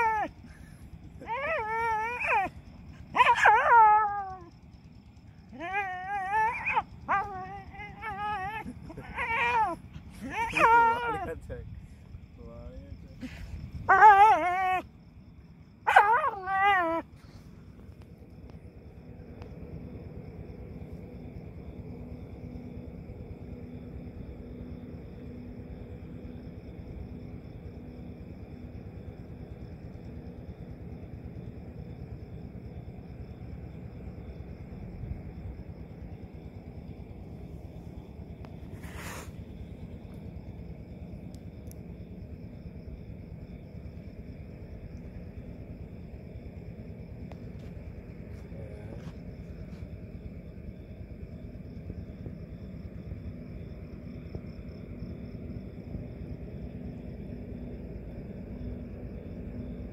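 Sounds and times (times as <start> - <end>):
dog whimpering: 0.0 - 0.4, 1.2 - 4.5, 5.5 - 11.4, 13.2 - 14.8, 15.9 - 17.1
faint steady background: 0.0 - 59.9.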